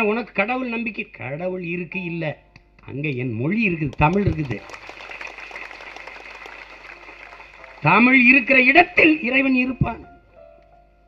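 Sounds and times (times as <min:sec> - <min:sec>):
audience applause: 0:03.9 - 0:08.7
person speaking: 0:07.8 - 0:10.1.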